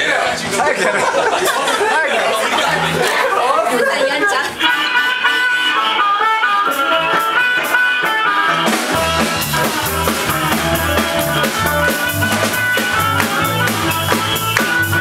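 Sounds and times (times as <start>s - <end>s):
voices: 0.0s - 6.0s, 8.9s - 15.0s
guitar: 0.0s - 15.0s
harmonica wailing: 4.3s - 15.0s
drums and bass beat: 4.6s - 15.0s.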